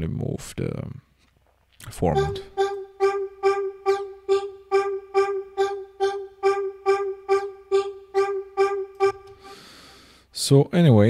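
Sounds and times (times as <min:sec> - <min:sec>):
vocal-like synth note repeating: 0:02.0 - 0:09.7.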